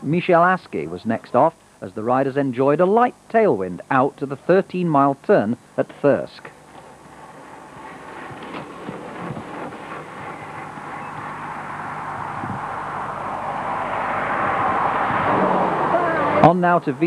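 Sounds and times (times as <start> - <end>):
vehicle approaching on road: 6.4 - 17.0.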